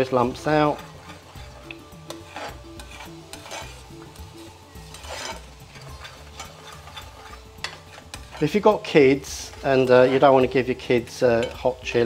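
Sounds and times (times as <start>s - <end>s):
gentle sizzle: 0.0s - 12.0s
spoon scraping a pan: 0.0s - 12.0s.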